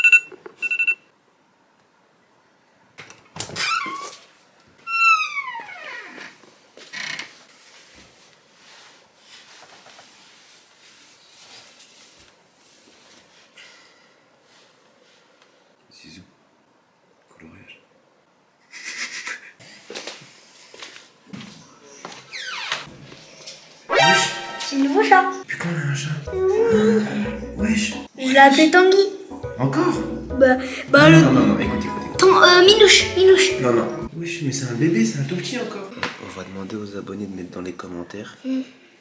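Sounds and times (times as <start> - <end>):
short electronic alarm beeps: 0.0 - 1.1.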